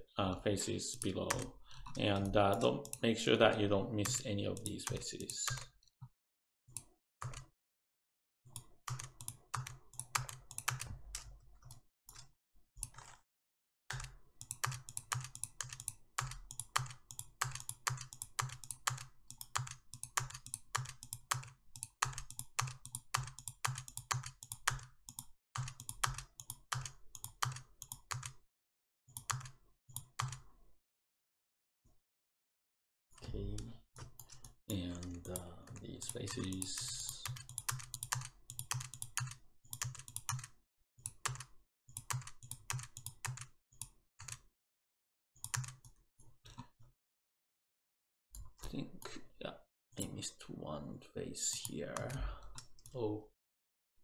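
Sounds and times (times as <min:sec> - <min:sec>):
mouse and keyboard clicking: 0:00.9 - 0:03.1, 0:08.6 - 0:13.2, 0:34.0 - 0:43.5.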